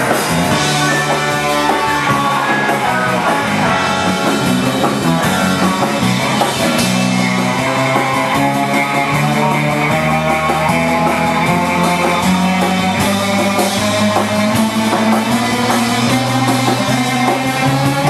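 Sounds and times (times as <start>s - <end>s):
electric guitars: 0.0s - 18.0s
live rock band playing: 0.0s - 18.0s
steady bass line: 0.0s - 18.0s.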